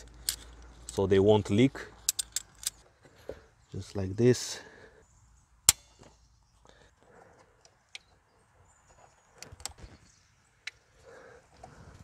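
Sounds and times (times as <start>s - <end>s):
tools clicking and tapping: 2.0s - 2.8s.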